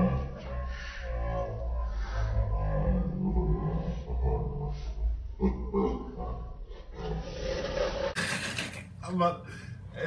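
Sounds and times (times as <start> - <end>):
deep low rumble: 0.0 - 8.2.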